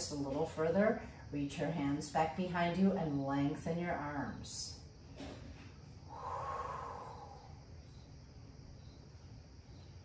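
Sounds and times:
woman exhaling: 6.1s - 7.6s.

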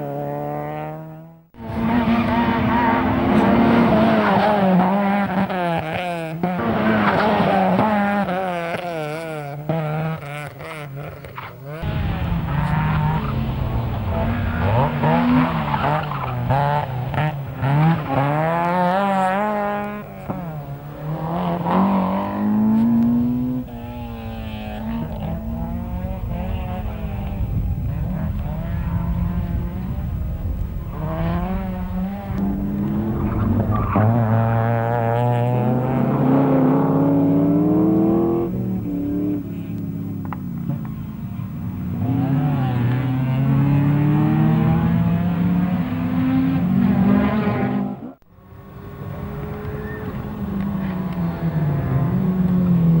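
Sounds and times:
rally car engine at full throttle: 0.0s - 53.0s.

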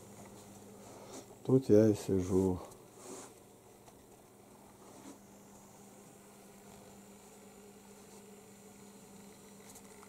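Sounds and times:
faint electrical hum and hiss: 0.0s - 10.0s.

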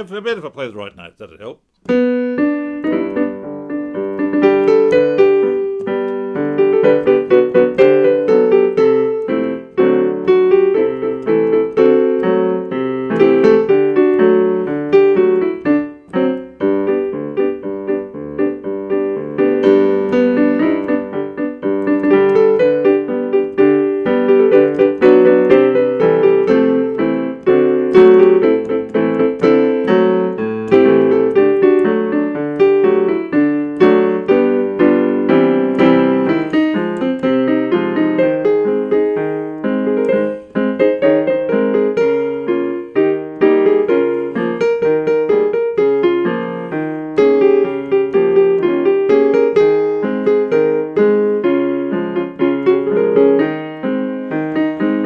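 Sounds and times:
electric piano theme tune: 1.8s - 55.0s.

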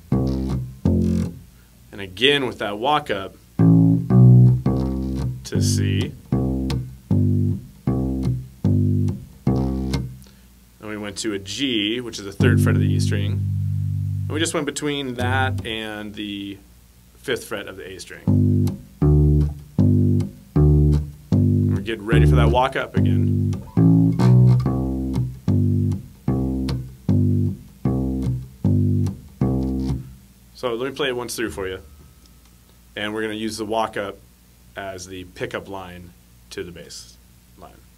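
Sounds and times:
electric bass guitar notes: 0.0s - 1.5s, 3.1s - 10.4s, 11.6s - 16.4s, 18.1s - 32.4s.

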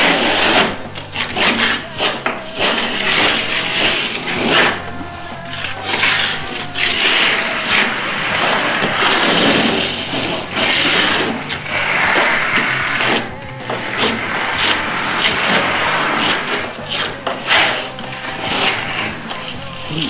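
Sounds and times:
trowels scraping wet plaster: 0.0s - 20.0s.

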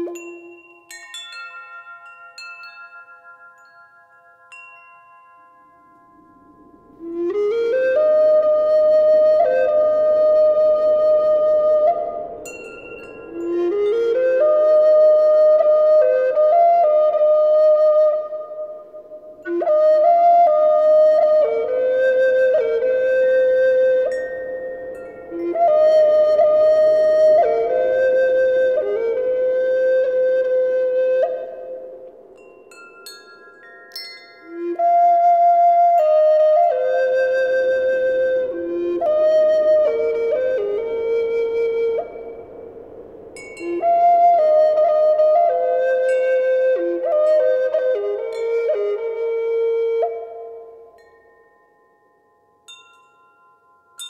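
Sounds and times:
solo flute melody: 0.0s - 3.8s, 5.4s - 33.4s, 34.0s - 52.0s.

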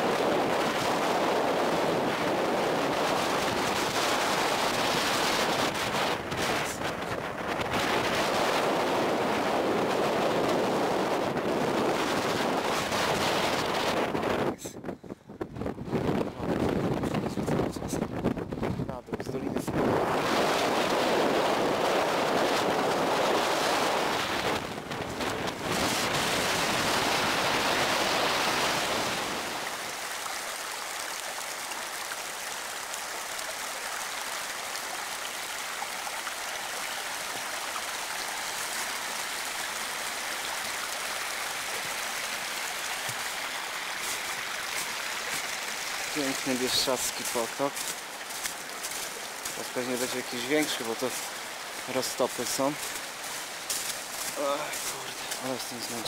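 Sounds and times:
mountain stream rushing: 0.0s - 14.4s, 19.8s - 56.0s
wind buffeting microphone: 0.0s - 29.6s.

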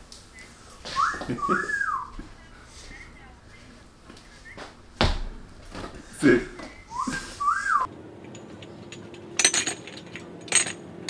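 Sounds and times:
person wolf whistling: 0.3s - 2.2s, 6.7s - 7.9s.

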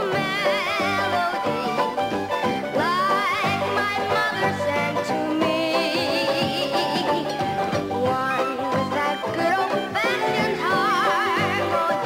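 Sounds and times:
girl singing with vibrato: 0.0s - 2.0s, 2.8s - 7.2s, 7.9s - 12.0s
piano accompaniment: 0.0s - 12.0s.

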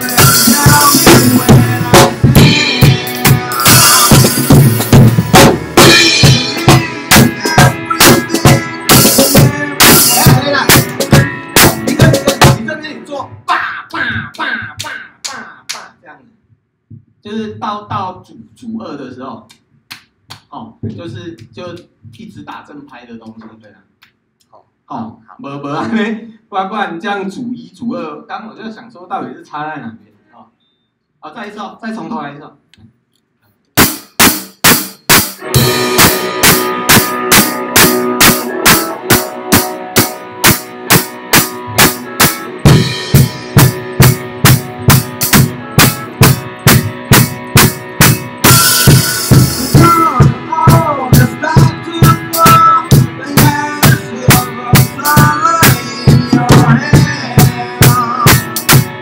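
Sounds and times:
tom drum fill: 0.0s - 12.7s, 33.8s - 59.0s
backing music: 0.0s - 15.8s, 33.8s - 59.0s
drum kit played with sticks: 0.0s - 16.0s, 33.7s - 59.0s.

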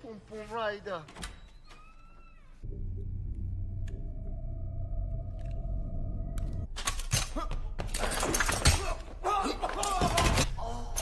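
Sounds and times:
low rumbling drone: 2.6s - 6.7s.

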